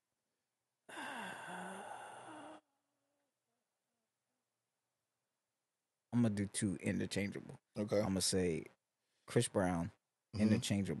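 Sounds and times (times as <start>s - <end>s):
man sighing: 0.9s - 2.5s.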